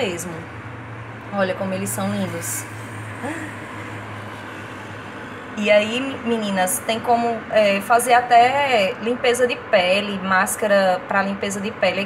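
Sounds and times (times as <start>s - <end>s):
steady low hum: 0.0s - 12.0s
woman murmuring: 3.2s - 3.7s.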